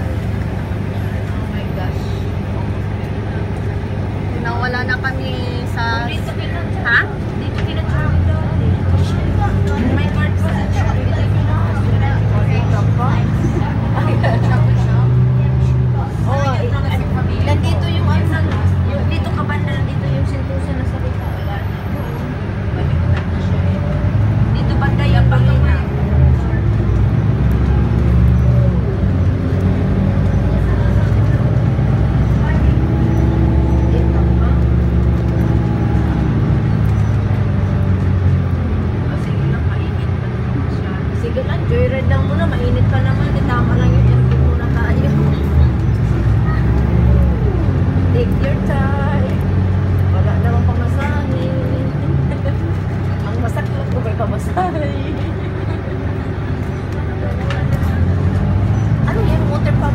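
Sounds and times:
bus engine rumble: 0.0s - 59.9s
people talking: 0.0s - 59.9s
road noise: 0.0s - 59.9s.

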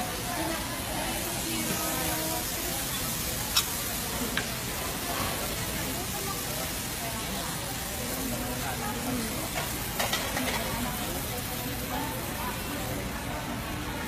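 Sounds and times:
faint distant voices: 0.0s - 14.0s.

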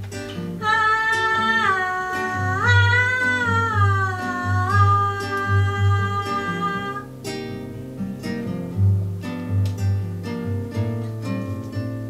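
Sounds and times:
strummed classical guitar: 0.0s - 12.0s
woman singing high held note: 0.6s - 7.1s.

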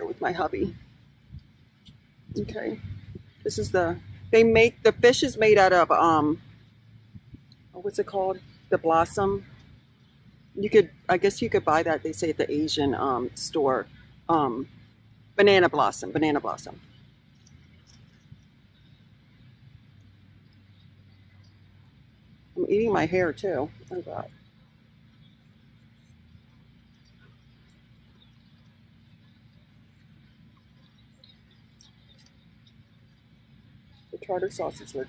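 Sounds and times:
quiet outdoor background: 0.0s - 35.0s
steady low rumble: 0.0s - 35.0s
faint chewing: 25.1s - 34.2s.

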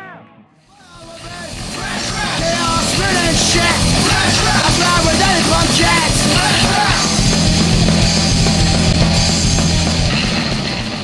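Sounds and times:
shouted vocals: 0.0s - 7.3s
punk rock music: 0.0s - 11.0s.

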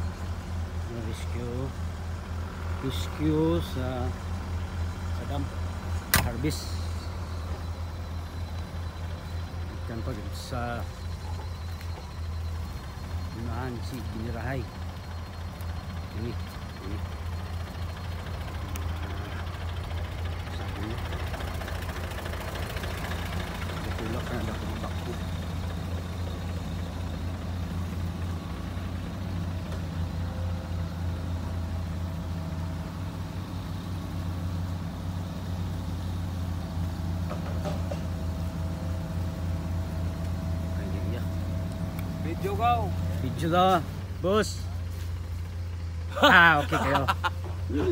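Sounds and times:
diesel engine idling: 0.0s - 47.9s.

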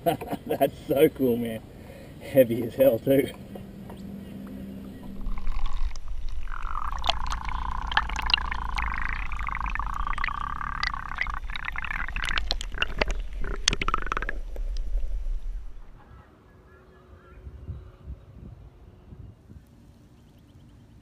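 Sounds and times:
water sloshing and gurgling: 4.9s - 16.0s
small splashes and clicks: 5.2s - 14.9s.

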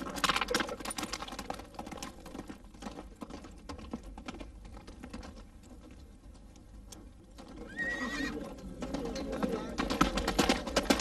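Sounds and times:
galloping hoofbeats: 0.0s - 11.0s
horse whinnying: 7.6s - 8.5s.

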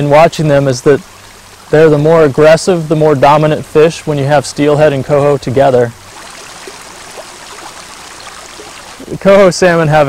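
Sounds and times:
stream water flowing: 0.0s - 10.0s.

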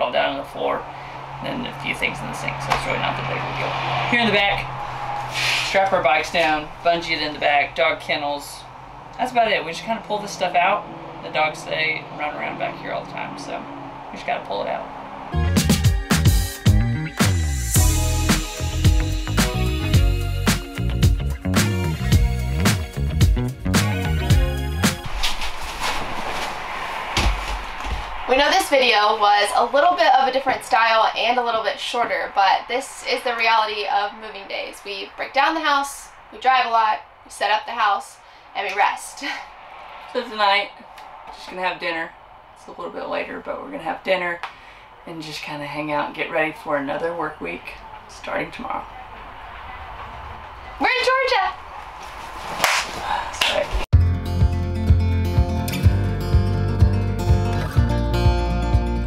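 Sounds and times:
short weak burst of sound: 3.5s - 5.8s
rustling on leather couch: 25.0s - 28.3s
hands slapping in a high-five: 52.6s - 53.6s.

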